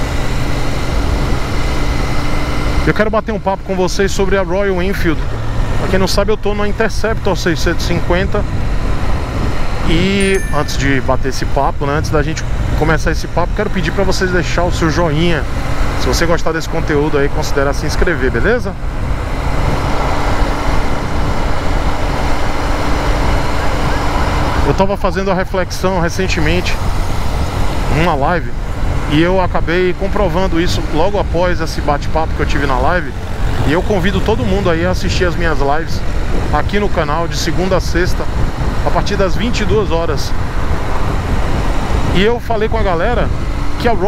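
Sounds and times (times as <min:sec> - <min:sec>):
motorcycle engine running: 0:00.0 - 0:37.0
loud wind: 0:00.0 - 0:44.0
road rush: 0:00.0 - 0:44.0.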